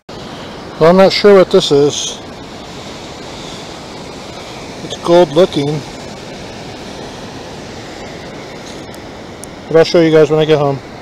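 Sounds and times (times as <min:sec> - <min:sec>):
ocean surf on a beach: 0:00.1 - 0:11.0.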